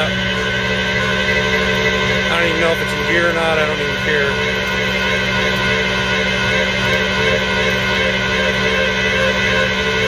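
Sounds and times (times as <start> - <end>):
high whine: 0.0 - 10.0
truck engine droning: 0.0 - 10.0.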